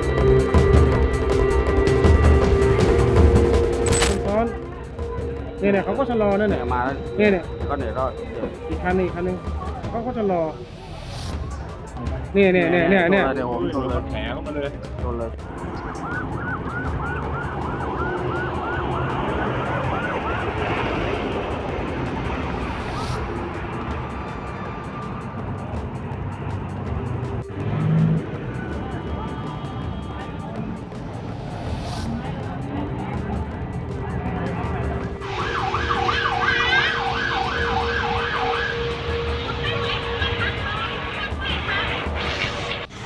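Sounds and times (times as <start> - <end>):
low rumble of traffic: 14.7 - 42.0
ambulance siren yelp: 15.5 - 25.8, 35.0 - 42.2.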